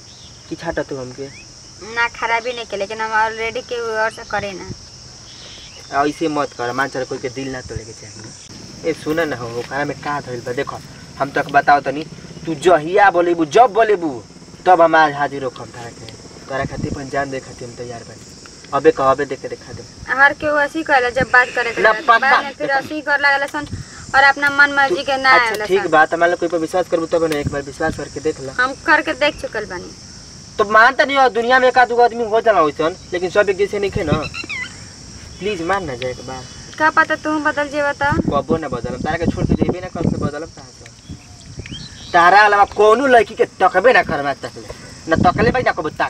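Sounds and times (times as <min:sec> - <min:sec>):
insects chirring in grass: 0:00.0 - 0:46.0
man talking: 0:05.9 - 0:19.9, 0:35.4 - 0:36.6.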